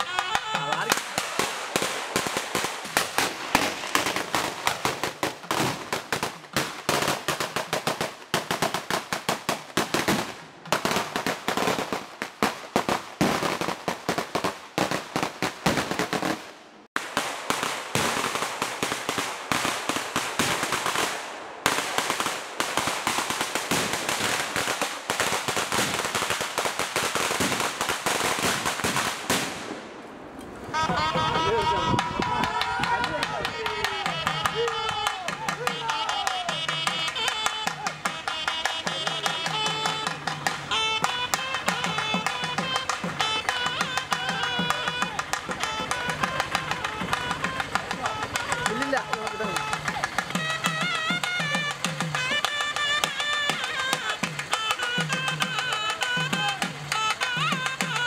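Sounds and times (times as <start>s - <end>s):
firecrackers crackling: 0.0s - 58.0s.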